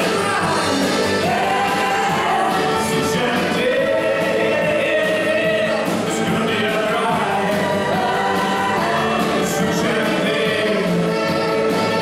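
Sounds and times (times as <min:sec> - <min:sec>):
women singing in harmony: 0:00.0 - 0:06.0, 0:07.1 - 0:10.9
gospel band playing: 0:00.0 - 0:12.0.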